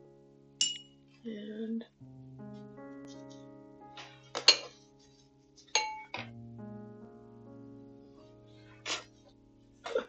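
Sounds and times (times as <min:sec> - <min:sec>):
soft piano music: 0:00.0 - 0:10.0
glass jar clinking: 0:00.6 - 0:01.0, 0:05.8 - 0:06.3.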